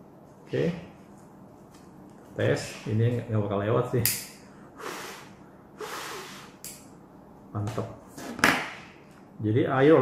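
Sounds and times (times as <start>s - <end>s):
breath blown through mask: 4.7s - 6.6s.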